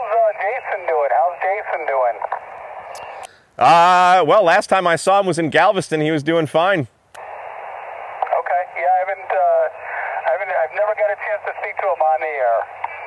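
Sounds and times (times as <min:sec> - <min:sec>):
man's voice over radio: 0:00.0 - 0:02.3, 0:08.2 - 0:13.0
radio static hiss: 0:00.0 - 0:04.2, 0:07.2 - 0:13.0.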